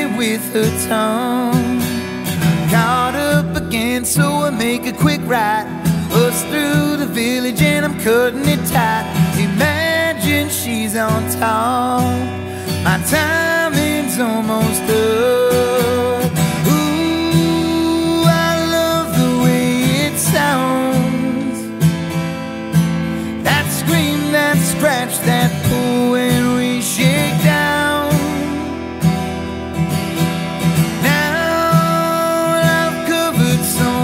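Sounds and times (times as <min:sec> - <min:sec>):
acoustic guitar strumming: 0:00.0 - 0:34.0
man singing long notes: 0:02.7 - 0:21.7, 0:23.4 - 0:28.8, 0:31.0 - 0:34.0.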